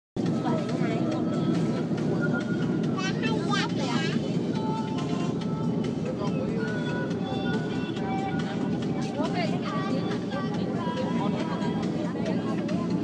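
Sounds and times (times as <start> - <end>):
bus engine and road rumble: 0.2 - 13.0
music playing: 0.2 - 13.0
voices: 0.2 - 13.0.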